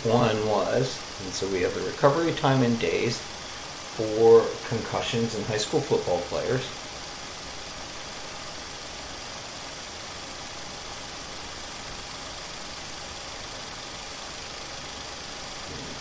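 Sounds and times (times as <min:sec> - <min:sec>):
recording hiss and hum: 0:00.0 - 0:16.0.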